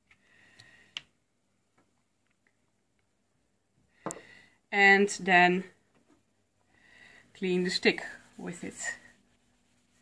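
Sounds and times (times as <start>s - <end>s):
faint clicks of small objects: 0.0s - 3.1s.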